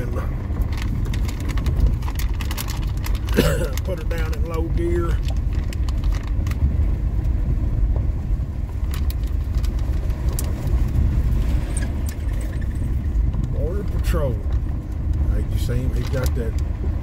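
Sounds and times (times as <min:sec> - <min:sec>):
tyres rolling over gravel: 0:00.0 - 0:06.9, 0:08.0 - 0:17.0
car engine in low gear: 0:00.0 - 0:17.0.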